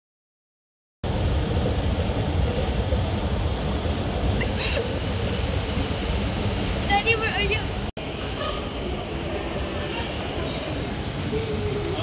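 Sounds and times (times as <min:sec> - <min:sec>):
escalator rumbling: 0:01.0 - 0:12.0.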